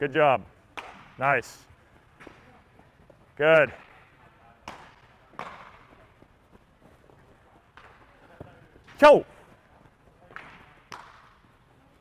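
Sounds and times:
baseballs hitting gloves: 0.6s - 1.2s, 3.7s - 7.0s, 7.6s - 9.1s, 10.2s - 12.0s.

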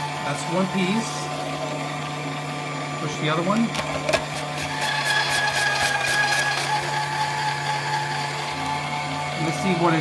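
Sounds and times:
salad maker motor hum and whine: 0.0s - 10.0s.

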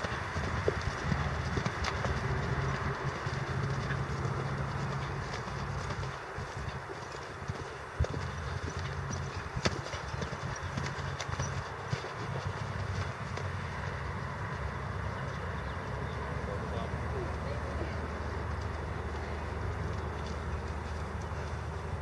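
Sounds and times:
hoofbeats on soft sand: 0.0s - 22.0s.

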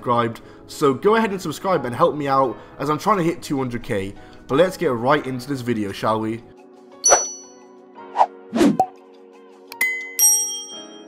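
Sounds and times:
sharp ding: 7.0s - 7.6s.

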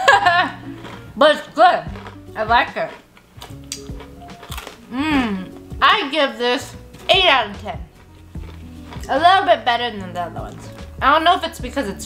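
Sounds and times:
quiet background music: 0.0s - 12.0s
crunching and chewing crispy snack: 0.4s - 1.2s, 1.9s - 5.6s, 7.8s - 9.2s.

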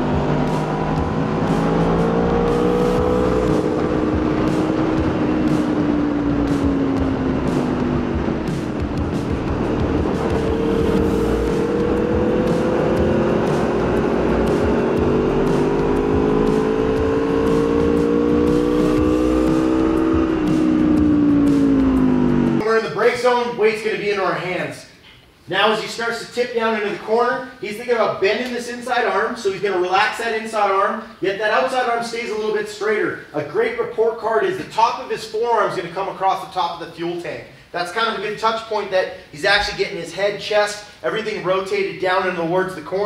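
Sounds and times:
motorcycle engine revving: 0.0s - 22.6s.

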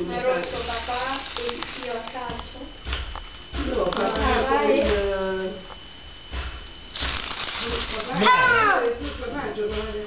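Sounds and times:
people talking: 0.0s - 2.8s, 3.6s - 5.7s, 7.6s - 10.0s.

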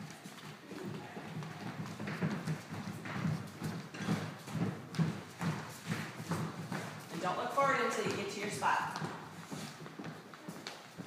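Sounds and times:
children's footsteps on wooden floor: 0.0s - 11.0s.

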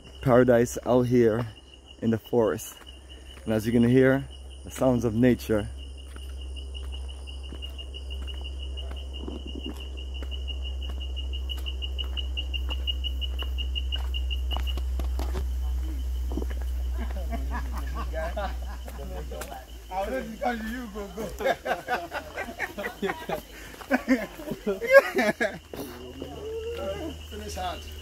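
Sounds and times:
insect trilling: 0.0s - 28.0s.

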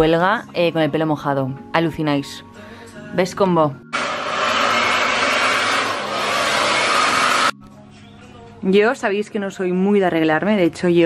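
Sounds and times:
hair dryer blowing: 4.0s - 7.6s.

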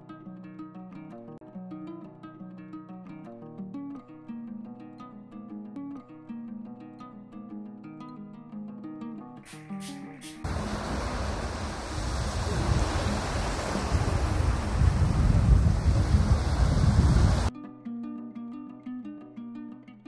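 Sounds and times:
plucked-string music: 0.0s - 11.7s, 17.5s - 20.0s
ocean surf rushing: 10.4s - 17.5s.

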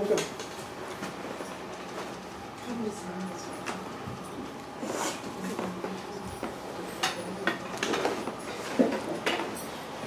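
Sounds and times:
voice: 2.6s - 4.2s, 5.2s - 8.0s.

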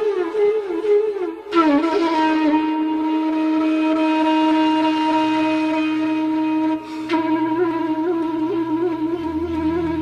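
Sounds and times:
long held flute note: 0.0s - 10.0s.

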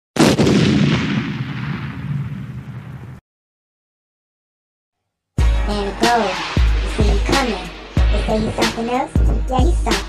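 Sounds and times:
explosion boom with rumble: 0.2s - 3.2s.

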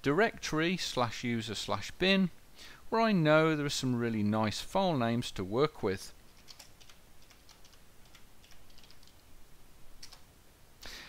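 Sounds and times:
computer keyboard keystrokes: 6.4s - 9.2s.

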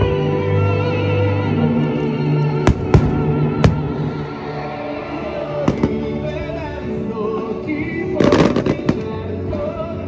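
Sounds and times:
music: 0.0s - 10.0s
fireworks crackling: 2.6s - 4.7s, 7.6s - 9.7s.

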